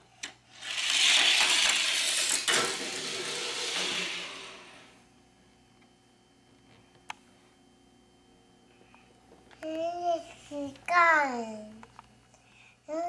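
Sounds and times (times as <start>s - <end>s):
toy car rolling on plastic track: 0.5s - 4.9s.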